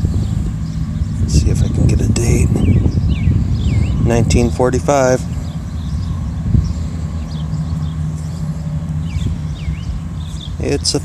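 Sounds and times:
low motor hum: 0:00.0 - 0:11.0.

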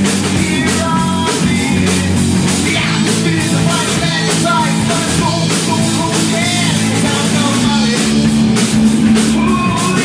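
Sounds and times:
drum hits: 0:00.0 - 0:10.0
live rock band playing: 0:00.0 - 0:10.0
steady bass line: 0:00.0 - 0:10.0.

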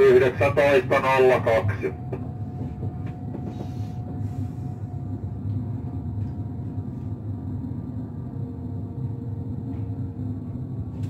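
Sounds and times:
train rumbling on rails: 0:00.0 - 0:11.0.

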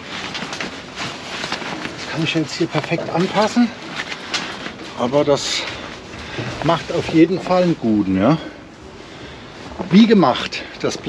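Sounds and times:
tent fabric rustling: 0:00.0 - 0:11.0.

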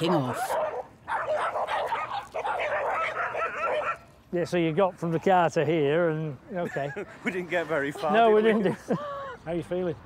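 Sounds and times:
dog barking excitedly: 0:00.1 - 0:04.1.

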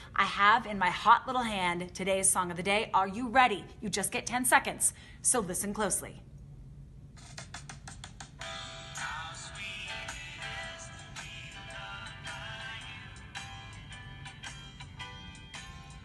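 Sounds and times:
song from a phone speaker: 0:08.4 - 0:16.0
person singing: 0:08.9 - 0:13.6.

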